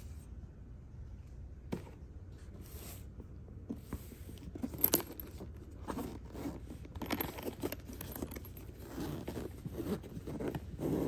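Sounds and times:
scraping and rustling handling: 1.7 - 11.0
zipper pulled open: 5.8 - 11.0.

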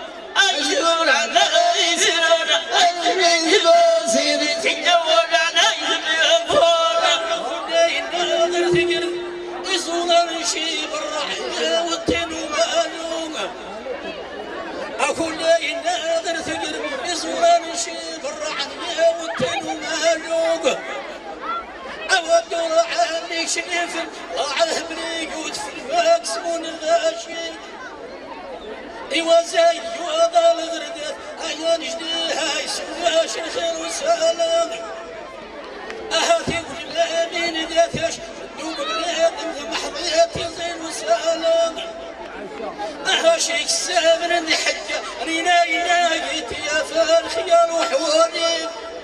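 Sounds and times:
men reciting poetry over loudspeakers: 0.0 - 13.9, 14.8 - 27.8, 29.0 - 35.2, 36.1 - 49.0
chatter: 0.0 - 49.0
steady held tone: 7.9 - 12.0.

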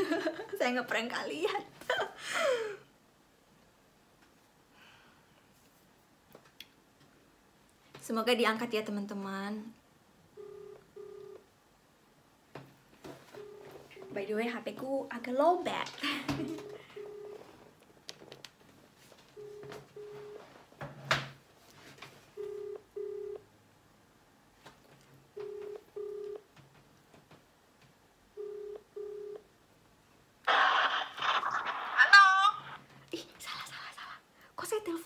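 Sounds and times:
phone ringback tone: 10.4 - 11.4, 13.4 - 14.1, 16.4 - 17.5, 19.4 - 20.5, 22.4 - 23.4, 25.4 - 26.4, 28.4 - 29.4
voice through a phone: 30.5 - 32.8.

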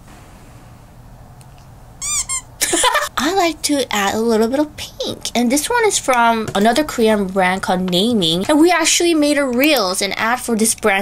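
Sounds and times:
woman squealing: 2.0 - 2.8.

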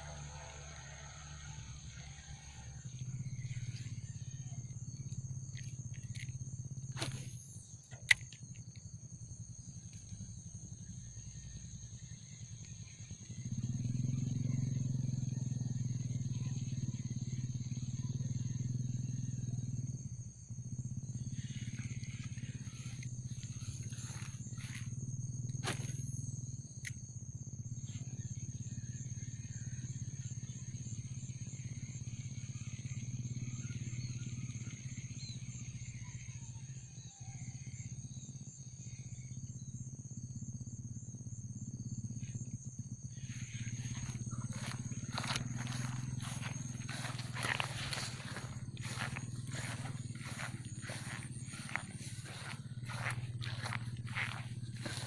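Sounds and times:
pulsing insect trill: 0.0 - 55.0
rustling and snapping of brush: 25.6 - 26.0.

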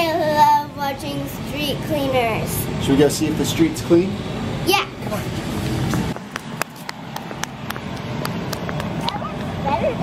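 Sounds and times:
child footsteps on concrete: 5.6 - 9.6.

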